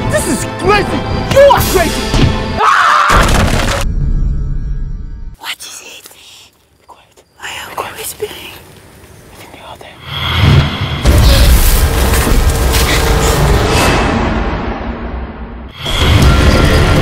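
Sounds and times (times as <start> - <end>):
film trailer music: 0.0 - 5.4, 9.7 - 17.0.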